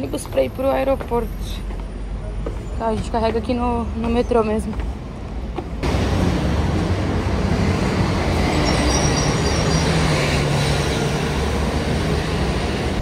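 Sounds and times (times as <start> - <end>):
buses and heavy traffic rumble: 0.0 - 13.0
high-pitched squeal: 8.2 - 11.2.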